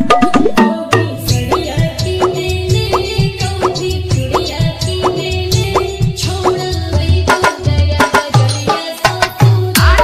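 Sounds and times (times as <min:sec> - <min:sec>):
heavy bass beat: 0:09.8 - 0:10.0.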